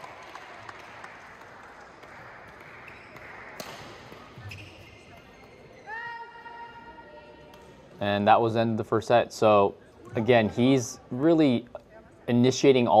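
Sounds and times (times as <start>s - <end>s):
shoe squeaking on court floor: 2.8s - 6.4s.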